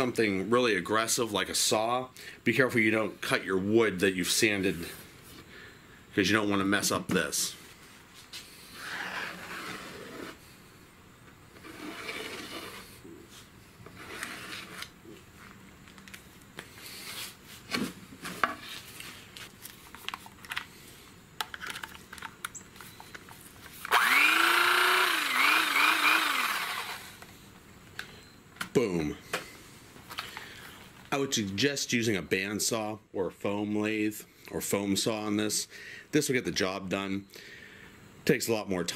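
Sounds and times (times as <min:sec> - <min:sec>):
marker scratching on foam: 0:08.7 - 0:10.4, 0:11.6 - 0:13.0, 0:14.0 - 0:14.9
electric knife motor: 0:08.8 - 0:10.4, 0:11.6 - 0:13.0, 0:23.8 - 0:27.2.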